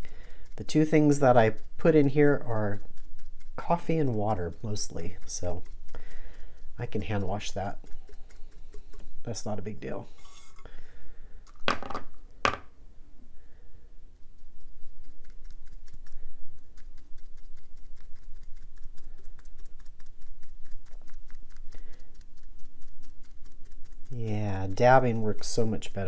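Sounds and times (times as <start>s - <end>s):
foam brush tapping: 0.0s - 10.4s.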